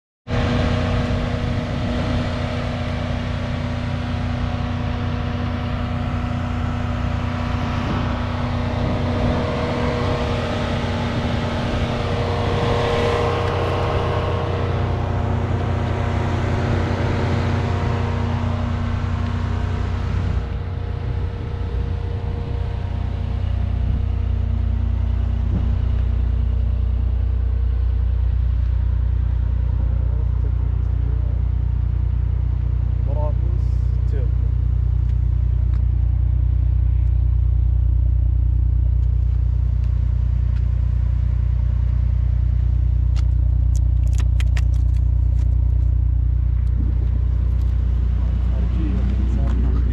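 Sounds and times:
car engine idling: 0.3 - 49.9.

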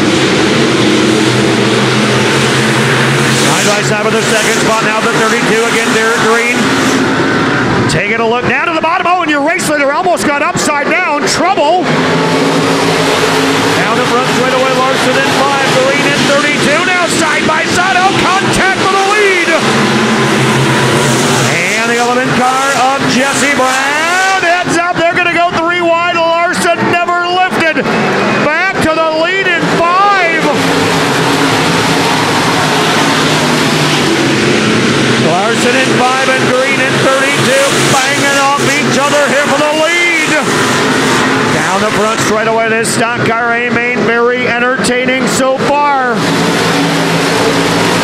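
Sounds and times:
race car engines revving: 0.0 - 48.0.

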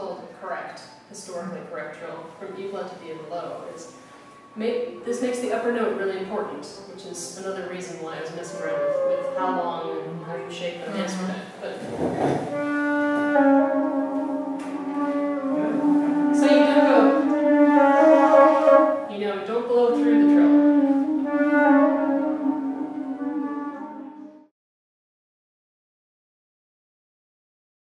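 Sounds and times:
wooden flute playing slow notes: 3.5 - 5.1, 8.2 - 11.4, 12.5 - 19.1, 19.9 - 24.5.

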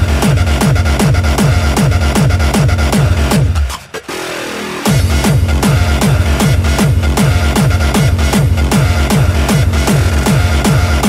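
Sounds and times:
heavy distorted kick drum: 0.0 - 3.7, 4.9 - 11.0
hardstyle dance music: 0.0 - 11.0.

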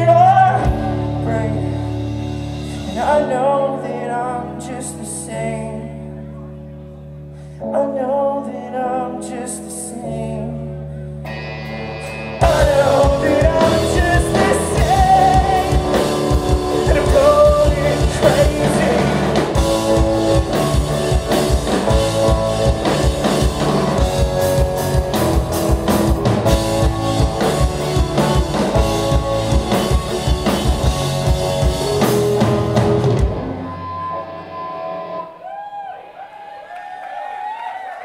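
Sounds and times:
live rock band playing: 0.0 - 7.6, 10.7 - 35.5.

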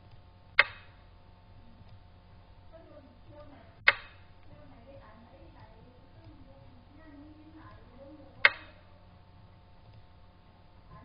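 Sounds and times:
chess piece click sound effect: 3.8 - 4.2.

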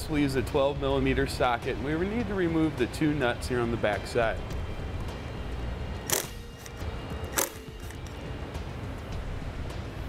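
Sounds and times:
background music: 0.0 - 10.0
socket wrench clicks: 6.1 - 8.2.

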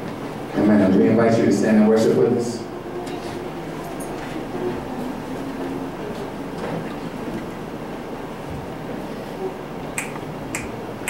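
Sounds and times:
finger snaps: 10.0 - 10.8.

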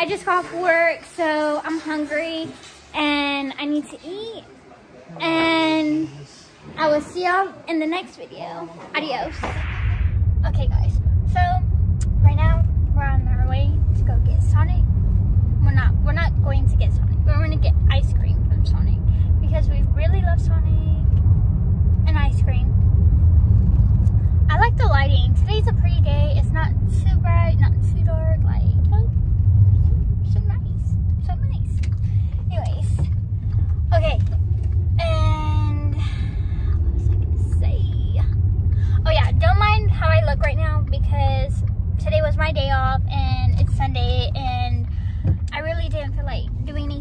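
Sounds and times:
people talking: 0.0 - 14.8, 15.6 - 21.2, 22.0 - 22.7, 24.5 - 29.1, 30.2 - 33.1, 33.9 - 34.4, 35.0 - 47.0
car cabin rumble: 9.0 - 47.0.

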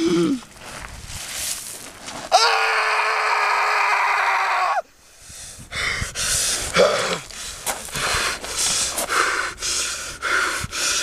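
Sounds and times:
man screaming: 2.3 - 4.8
sharp breath: 5.0 - 11.0.

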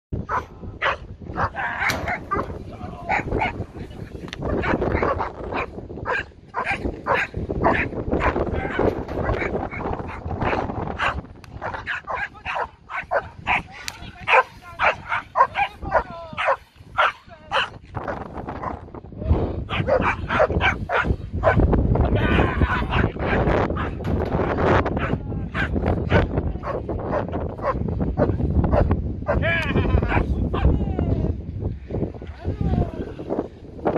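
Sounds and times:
puppy barking: 0.3 - 2.5, 4.5 - 13.7, 14.3 - 17.8, 19.7 - 21.6, 25.0 - 27.8.

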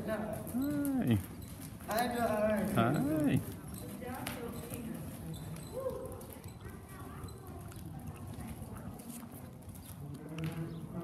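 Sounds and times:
faint voices: 0.0 - 1.4
horse hoofbeats on dirt: 0.0 - 11.0.

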